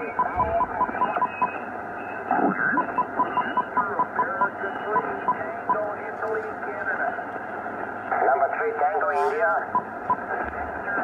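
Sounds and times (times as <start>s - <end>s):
garbled radio signals and whistles: 0.0s - 5.9s
tinny radio hiss: 0.0s - 11.0s.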